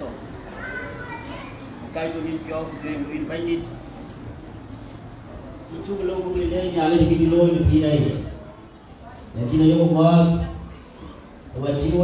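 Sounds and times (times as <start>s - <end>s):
children chattering faintly: 0.0s - 12.0s
man speaking over microphone: 5.7s - 8.4s, 9.3s - 10.6s, 11.5s - 12.0s.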